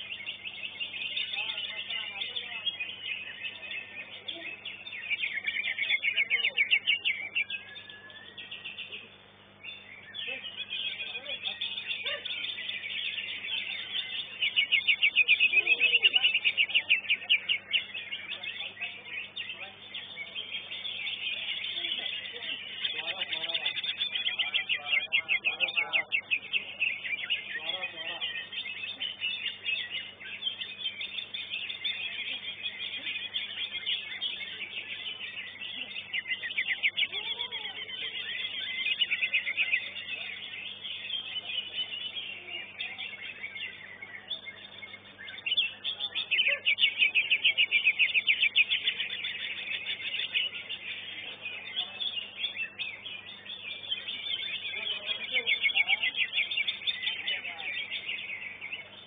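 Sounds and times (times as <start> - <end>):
bird singing high trilled phrases: 0.0 - 59.0.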